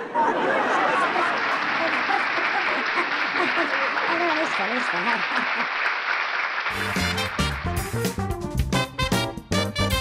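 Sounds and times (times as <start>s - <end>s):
audience applause: 0.4s - 8.2s.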